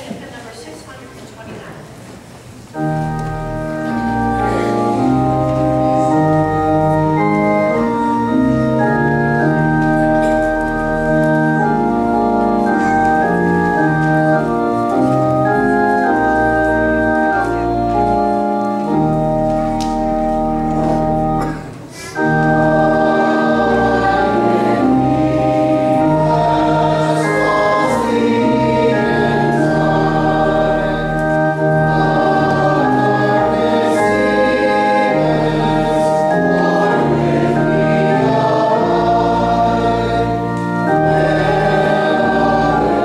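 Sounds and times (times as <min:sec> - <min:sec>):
church organ chords: 0:02.7 - 0:43.0.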